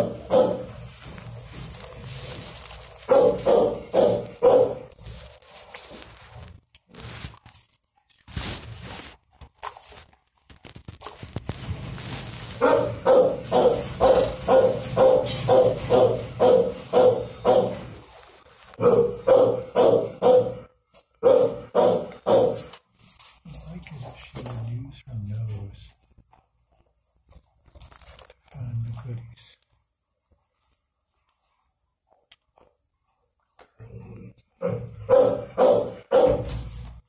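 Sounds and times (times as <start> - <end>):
dog barking: 0.0 - 0.8, 3.1 - 4.9, 12.6 - 17.9, 18.8 - 22.7, 34.6 - 36.7.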